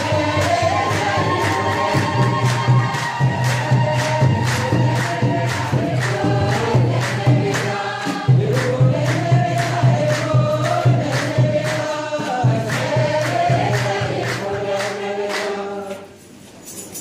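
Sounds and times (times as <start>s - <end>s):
drum beating: 0.0s - 15.5s
hand-clapping: 0.0s - 16.0s
congregation singing: 0.0s - 17.0s.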